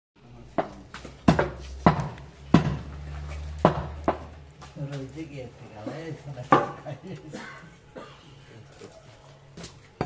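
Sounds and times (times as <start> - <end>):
steady low hum: 0.2 - 10.0
meat cleaver chopping bone: 0.6 - 3.0, 3.6 - 4.3.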